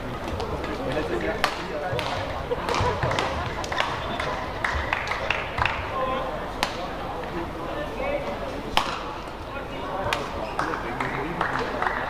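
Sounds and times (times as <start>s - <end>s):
murmur of voices: 0.0s - 12.0s
rackets striking shuttlecock: 8.7s - 9.4s.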